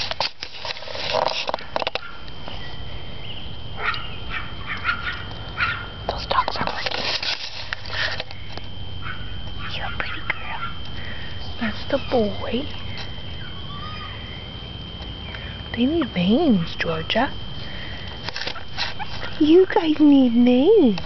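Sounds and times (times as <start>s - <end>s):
tall grass rustling: 0.0s - 3.3s, 6.3s - 9.3s, 17.4s - 19.7s.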